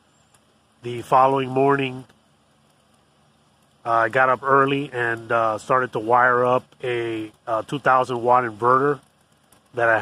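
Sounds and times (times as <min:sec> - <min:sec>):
man speaking: 0:00.8 - 0:02.0, 0:03.9 - 0:09.0, 0:09.8 - 0:10.0.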